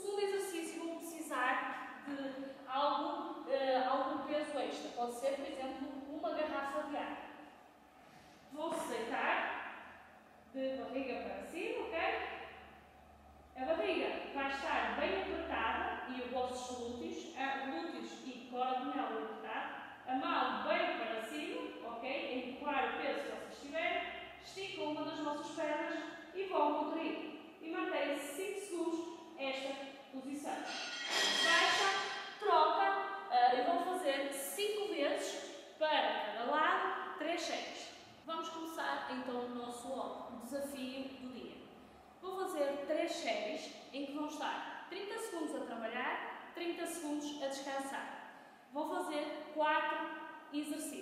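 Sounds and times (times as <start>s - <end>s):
woman speaking: 0.0s - 7.2s, 8.5s - 9.5s, 10.5s - 12.4s, 13.6s - 41.6s, 42.2s - 48.1s, 48.7s - 51.0s.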